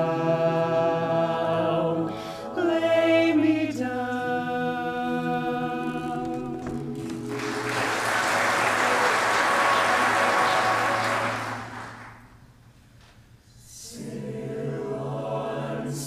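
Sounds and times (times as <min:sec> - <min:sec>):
a cappella vocal quartet chord: 0:00.0 - 0:12.1, 0:13.6 - 0:16.0
audience applause: 0:07.0 - 0:12.4.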